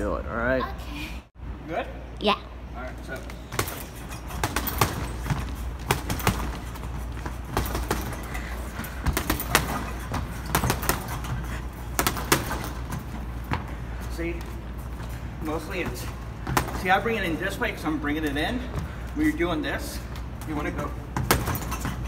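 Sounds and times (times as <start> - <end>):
punches on heavy bag: 3.5 - 13.7.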